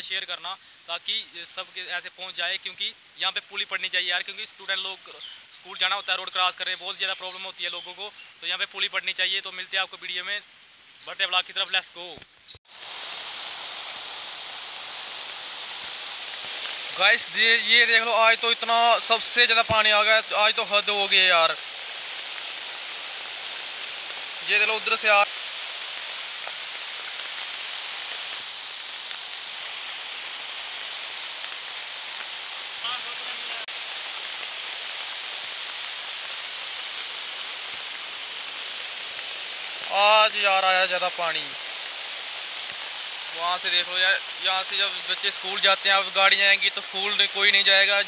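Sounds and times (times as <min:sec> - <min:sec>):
floodwater rushing: 0:12.7 - 0:48.0.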